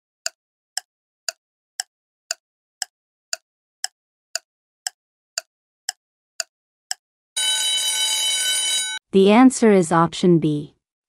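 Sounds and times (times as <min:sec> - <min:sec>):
clock ticks: 0:00.2 - 0:07.0
alarm bell ringing: 0:07.4 - 0:09.0.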